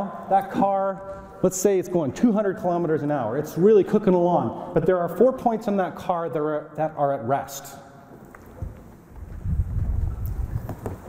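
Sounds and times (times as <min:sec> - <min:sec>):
microphone handling rumble: 0:08.5 - 0:11.0.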